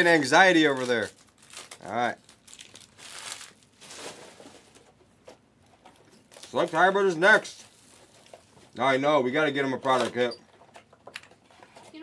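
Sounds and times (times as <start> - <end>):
plastic wrapping crinkling and tearing: 0.0 - 5.0, 5.8 - 8.8.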